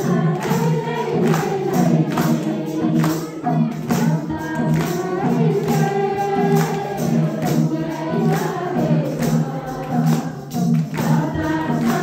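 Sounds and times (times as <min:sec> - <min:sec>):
group singing devotional song: 0:00.0 - 0:12.0
hand percussion beat: 0:00.0 - 0:12.0.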